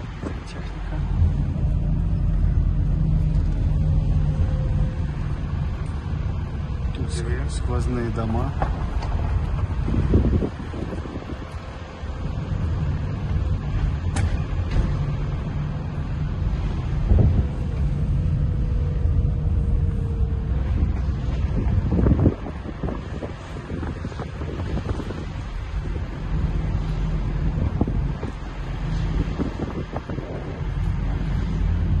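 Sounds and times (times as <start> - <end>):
engine and tyres rumbling: 0.0 - 32.0
wind buffeting microphone: 0.0 - 32.0.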